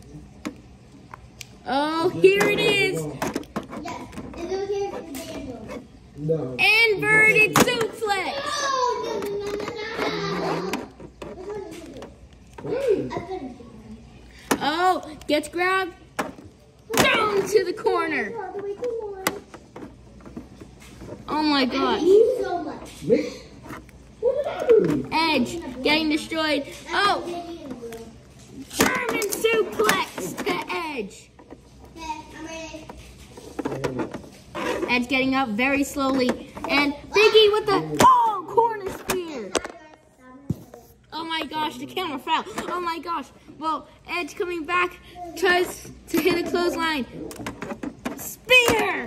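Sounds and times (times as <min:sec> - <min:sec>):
child speaking: 0:03.8 - 0:05.9, 0:06.6 - 0:14.0, 0:16.9 - 0:19.5, 0:21.3 - 0:23.1, 0:24.2 - 0:31.3, 0:31.9 - 0:33.0, 0:34.9 - 0:47.2, 0:48.2 - 0:49.0
plastic toy figures knocking: 0:16.2 - 0:17.6.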